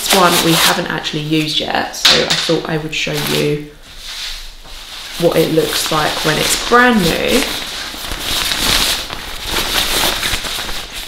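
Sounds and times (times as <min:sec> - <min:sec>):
waterproof fabric crinkling: 0:00.0 - 0:01.6, 0:03.0 - 0:11.0.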